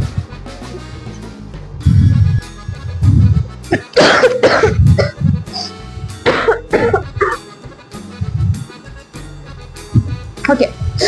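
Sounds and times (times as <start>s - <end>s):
background music with low beat: 0.0s - 11.0s
woman coughing: 3.7s - 7.4s.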